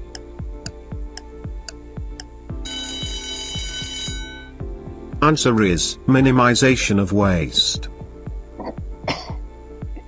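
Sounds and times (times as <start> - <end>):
timer ticking: 0.0 - 4.6
low pulsing beat: 0.0 - 10.0
alarm clock bell ringing: 2.6 - 4.6.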